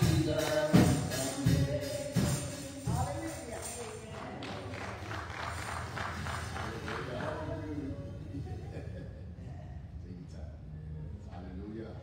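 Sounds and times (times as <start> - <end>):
gospel song with tambourine: 0.0 - 7.9
voices: 0.0 - 12.0
congregation clapping: 3.4 - 7.8.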